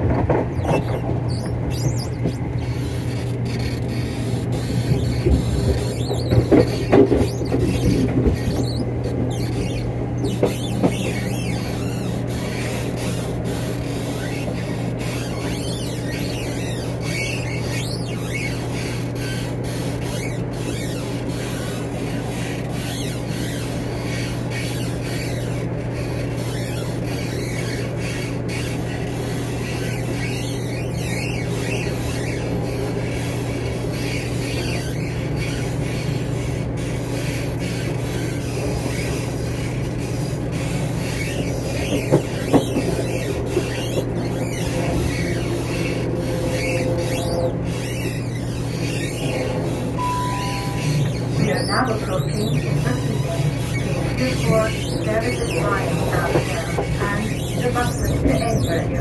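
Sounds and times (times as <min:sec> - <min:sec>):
faint high squeals: 0:00.2 - 0:59.0
train diesel engine drone: 0:49.2 - 0:59.0.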